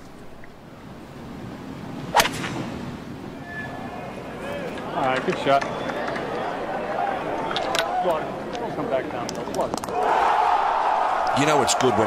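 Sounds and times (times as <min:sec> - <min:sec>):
golf ball struck by club: 0:02.1 - 0:02.7
murmur of crowd: 0:03.3 - 0:12.0.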